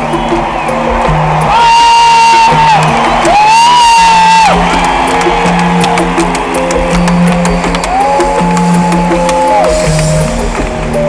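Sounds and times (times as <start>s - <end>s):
crowd noise: 0.0s - 11.0s
live band music: 0.0s - 11.0s.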